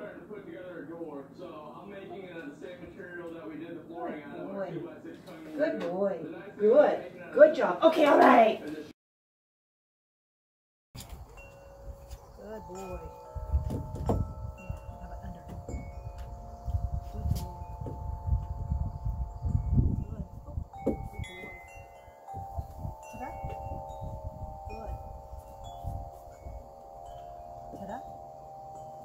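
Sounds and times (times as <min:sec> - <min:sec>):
wind chimes ringing: 0:11.2 - 0:29.0
low thumps and rumble: 0:13.6 - 0:16.4.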